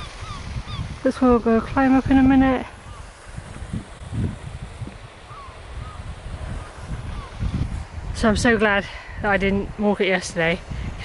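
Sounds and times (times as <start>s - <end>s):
high bird calls: 0.0s - 0.9s, 5.3s - 7.6s
wind buffeting microphone: 0.0s - 11.0s.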